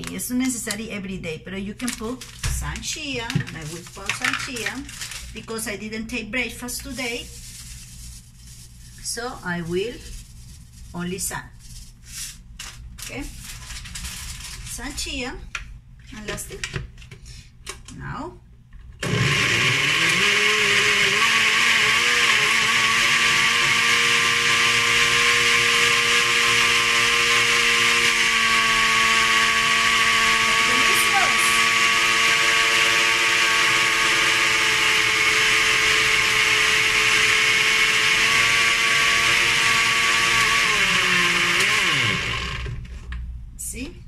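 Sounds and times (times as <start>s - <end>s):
blender motor running: 19.0s - 42.8s.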